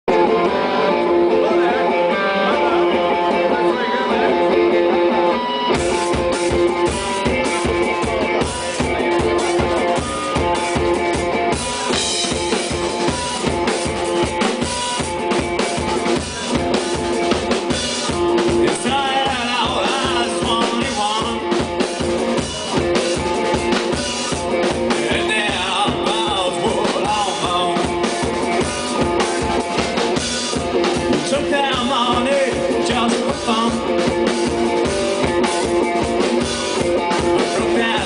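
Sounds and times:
electric guitar: 0.0s - 38.0s
rock band playing: 0.0s - 38.0s.

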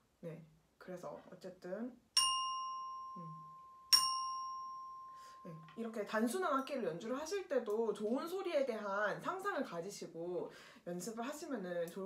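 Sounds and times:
xylophone bar struck with mallet: 2.2s - 5.8s.

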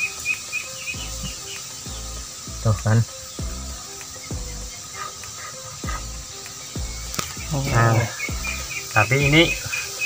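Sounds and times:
small bird chirping: 0.0s - 10.0s.

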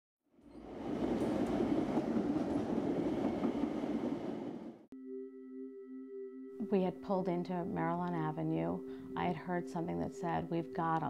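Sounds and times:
train wheels on rails: 0.5s - 4.8s.

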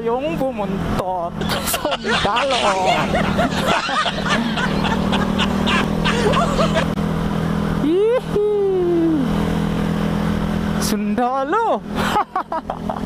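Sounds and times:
motorcycle engine cruising: 0.8s - 13.0s
man laughing: 1.4s - 7.0s, 12.0s - 13.0s.

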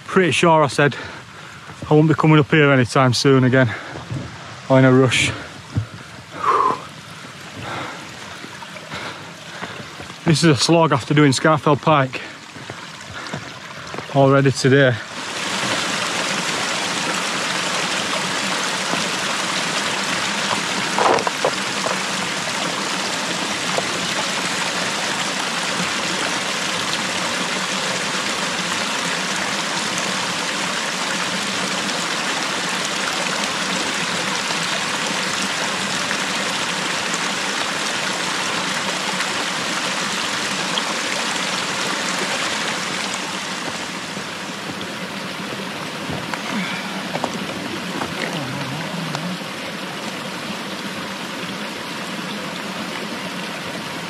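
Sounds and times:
stream splashing over rocks: 0.0s - 54.0s.

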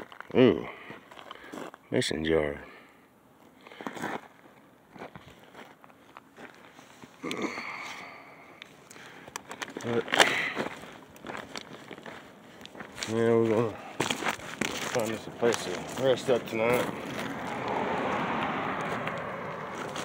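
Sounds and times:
footsteps crunching on gravel: 0.0s - 1.9s, 3.4s - 8.1s, 8.7s - 20.0s.

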